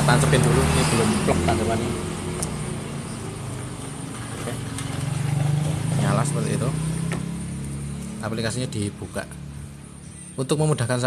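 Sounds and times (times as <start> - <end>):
small engine idling: 3.0 - 7.8.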